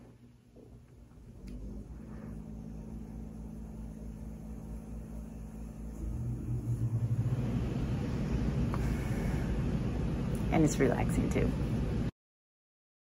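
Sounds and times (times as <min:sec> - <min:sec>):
air conditioner hum: 0:00.0 - 0:12.1
air conditioner rushing noise: 0:00.0 - 0:12.1.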